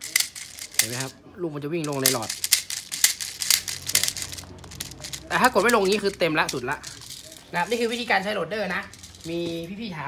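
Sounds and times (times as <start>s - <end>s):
plastic bbs clicking and rattling: 0.0s - 1.2s, 1.8s - 9.8s.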